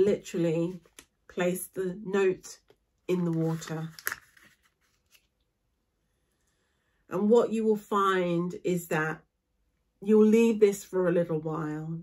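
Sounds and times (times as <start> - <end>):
paper note rustling: 3.2 - 5.3.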